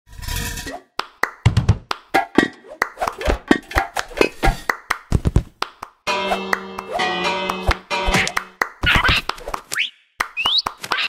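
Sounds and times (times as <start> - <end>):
hand claps: 1.0 - 11.0.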